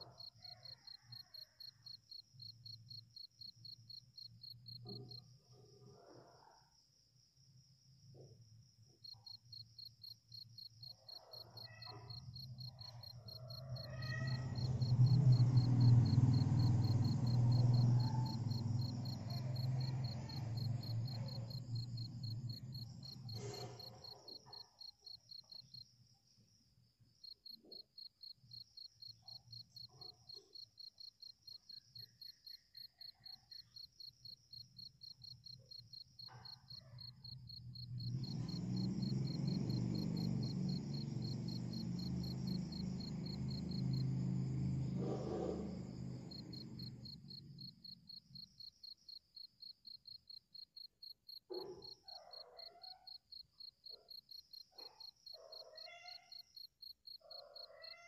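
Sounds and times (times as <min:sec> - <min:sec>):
insect chirping: 0:00.0 - 0:58.0.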